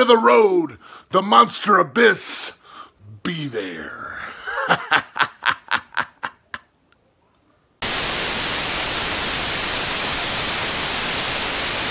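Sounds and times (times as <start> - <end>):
man laughing: 4.1 - 6.8
tv static hiss: 7.8 - 11.9.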